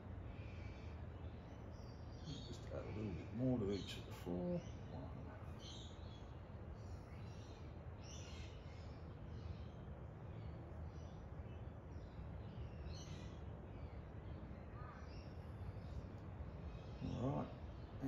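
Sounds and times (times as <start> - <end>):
distant birds calling: 0.0 - 18.0
low background rumble: 0.0 - 18.0.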